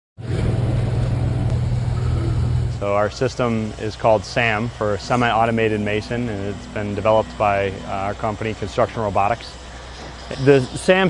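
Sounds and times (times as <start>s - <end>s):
engine running with low hum: 0.2s - 11.0s.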